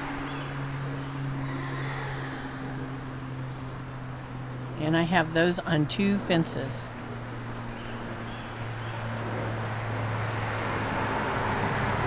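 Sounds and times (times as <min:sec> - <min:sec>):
faint outdoor background: 0:00.0 - 0:12.0
steady low hum: 0:00.0 - 0:12.0.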